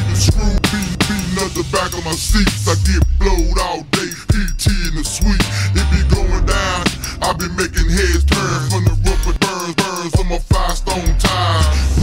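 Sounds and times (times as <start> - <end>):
slowed-down rapping over a beat: 0.0 - 12.0.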